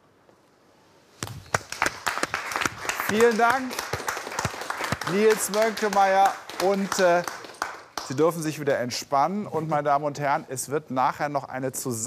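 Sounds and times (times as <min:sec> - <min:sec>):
audience applauding: 0:01.5 - 0:08.3.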